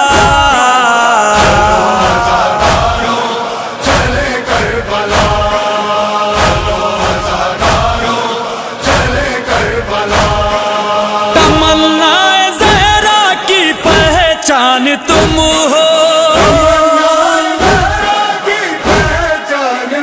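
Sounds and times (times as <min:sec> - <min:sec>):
chorus chanting held notes: 0:00.0 - 0:12.0
chest-beating thumps: 0:01.4 - 0:04.3, 0:16.4 - 0:16.8, 0:18.8 - 0:19.3.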